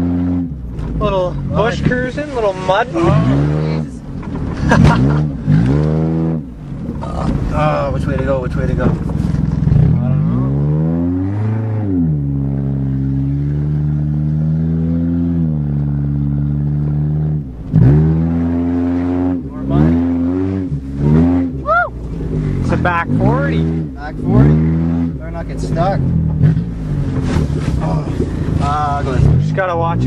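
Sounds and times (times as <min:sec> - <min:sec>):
car engine revving under load: 0:00.0 - 0:30.0.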